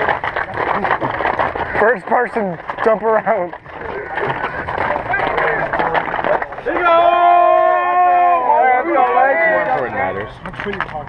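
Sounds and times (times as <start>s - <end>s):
overlapping chatter and calling out: 0.0s - 11.0s.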